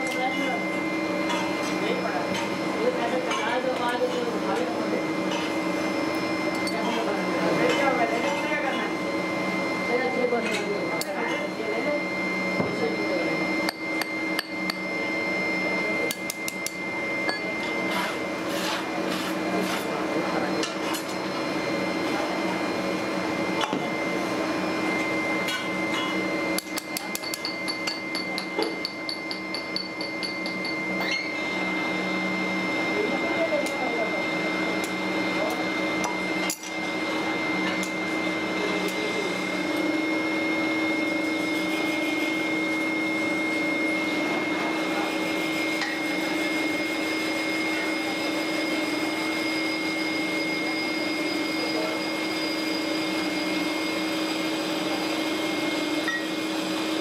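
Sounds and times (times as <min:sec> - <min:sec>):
machine hum with high whine: 0:00.0 - 0:57.0.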